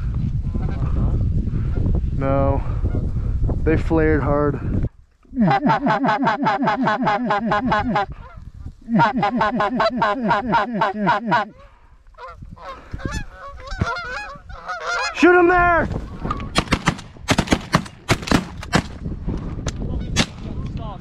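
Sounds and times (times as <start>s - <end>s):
geese honking: 5.4s - 15.4s.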